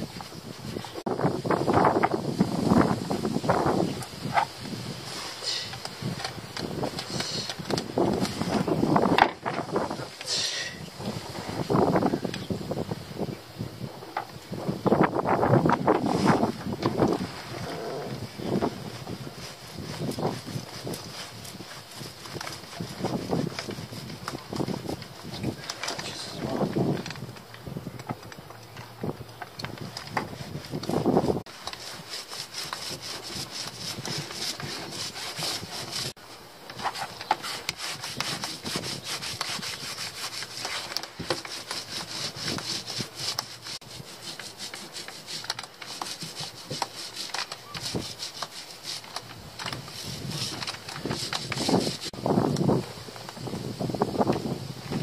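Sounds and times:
brush scrubbing fibreglass: 15.4 - 26.9, 29.8 - 52.2.

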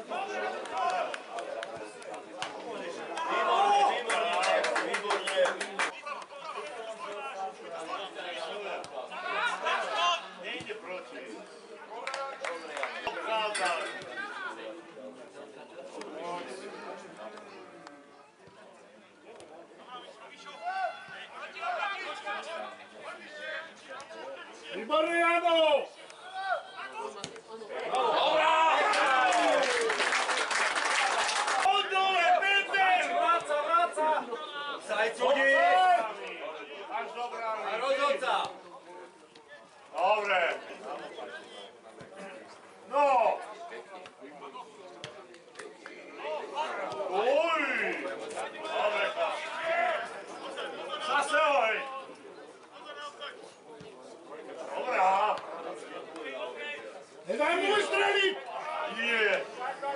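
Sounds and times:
people talking and calling out: 0.0 - 59.9.

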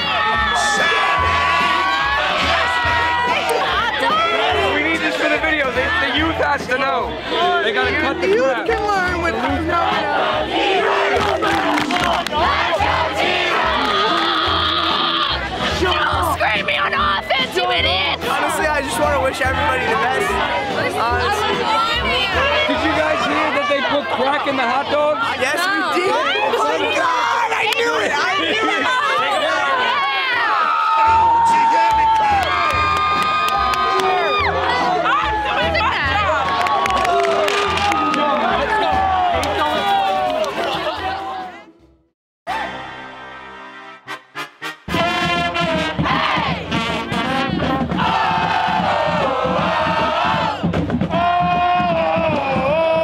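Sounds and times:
crowd shouting and cheering: 0.0 - 53.0.

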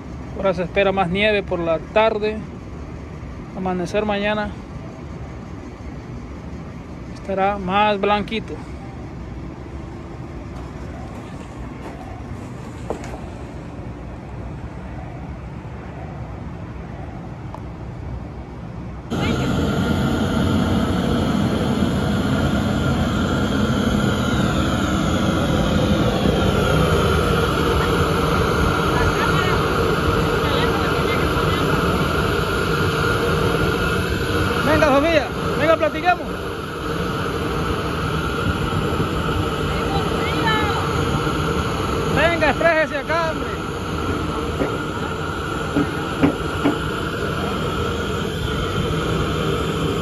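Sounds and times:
faint city background: 0.0 - 50.0
propane burner roaring: 0.0 - 50.0.

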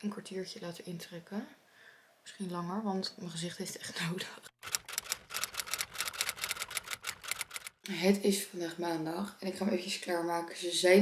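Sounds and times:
typewriter keystroke clicks: 4.6 - 7.8.

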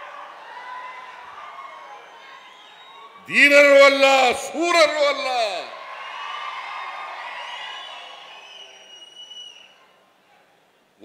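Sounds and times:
large crowd cheering and whistling: 0.0 - 10.2.

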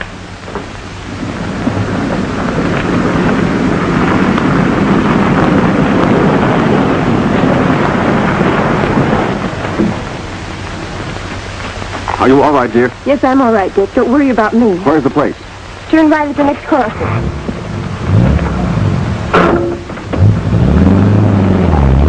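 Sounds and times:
car engine and tyres on dirt: 0.0 - 12.9, 17.0 - 22.0.

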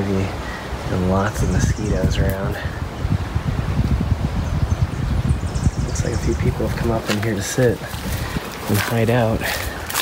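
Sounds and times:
rustling leaves and brush: 0.0 - 10.0
wind rumbling on microphone: 0.0 - 10.0.

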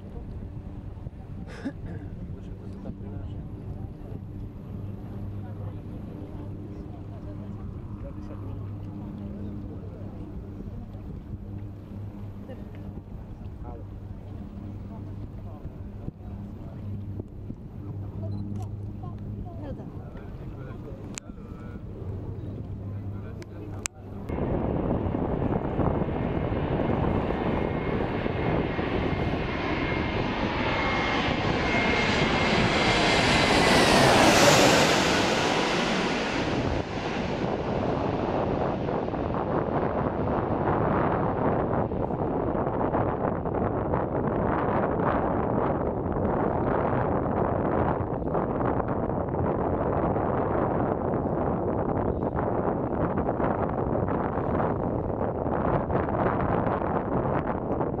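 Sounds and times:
jet airliner passing overhead: 0.0 - 58.0
jet landing rumble: 0.0 - 58.0.

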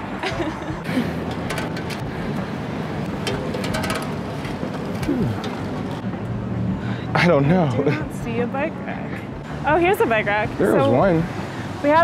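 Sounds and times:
bicycle clicks and rattles: 1.1 - 6.0.

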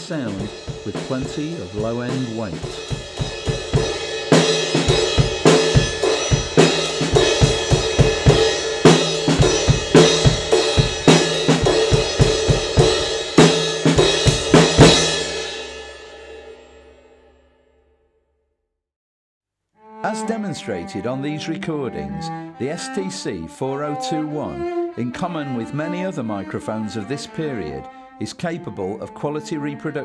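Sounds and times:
drum kit playing a beat: 0.0 - 16.3.

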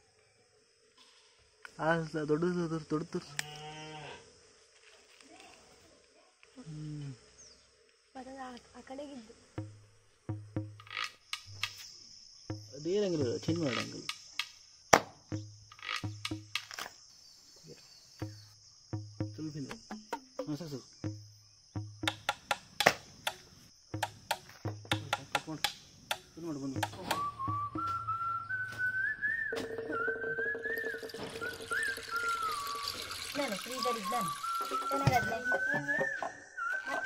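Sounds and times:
high insect chorus: 0.0 - 37.0.

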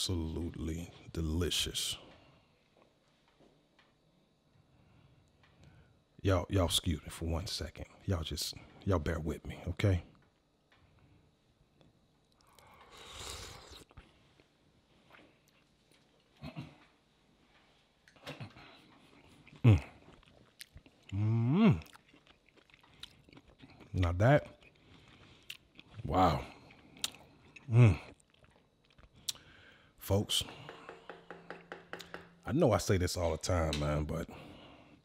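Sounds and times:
quiet chewing: 10.1 - 29.9
man slurping from spoon: 12.5 - 14.0
man humming mmm: 21.1 - 22.0, 27.7 - 28.1.

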